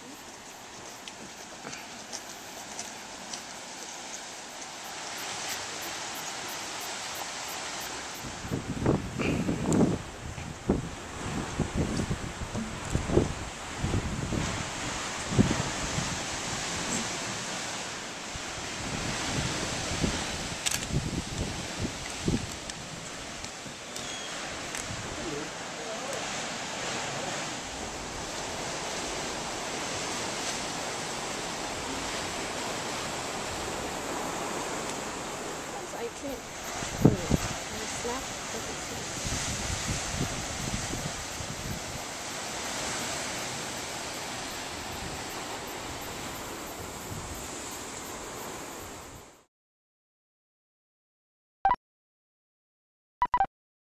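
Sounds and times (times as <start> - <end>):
surf washing against rocks: 0.0 - 49.2
wind hitting microphone: 8.3 - 17.1, 36.6 - 38.2, 38.9 - 42.0.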